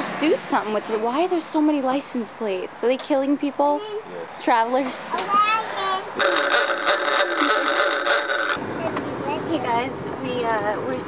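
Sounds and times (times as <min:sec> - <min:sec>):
buzzing horn honk: 0:06.2 - 0:08.6.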